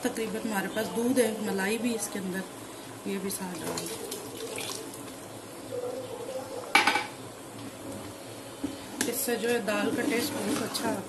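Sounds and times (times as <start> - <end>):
milk pouring and splashing: 3.5 - 5.1.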